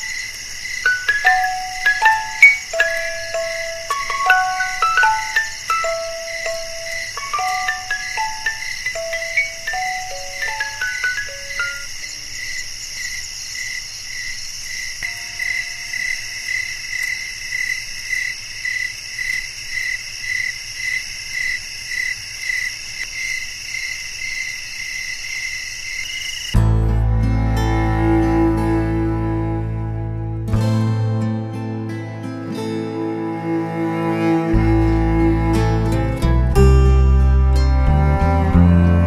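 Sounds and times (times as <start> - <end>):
crickets chirping: 0.0 - 26.6, 27.4 - 30.3
music box notes: 0.8 - 12.0.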